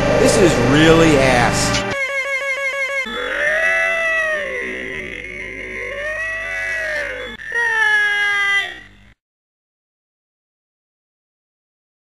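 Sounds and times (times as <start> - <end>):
drawn-out wailing cries: 2.0 - 9.2.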